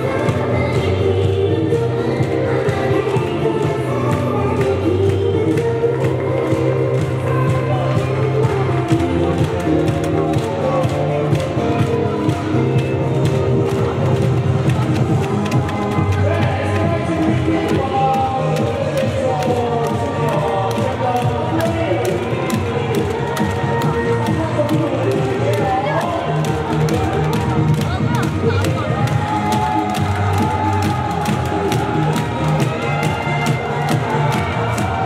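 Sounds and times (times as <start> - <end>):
dance song with sung vocals: 0.0 - 35.0.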